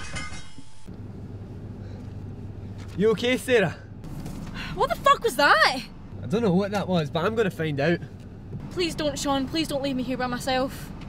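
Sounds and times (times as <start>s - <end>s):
low steady hum: 0.8s - 11.0s.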